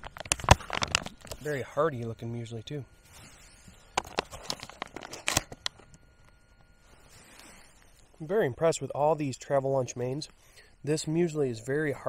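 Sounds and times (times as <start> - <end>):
foil pouch crinkling: 0.0 - 1.5, 3.9 - 5.8.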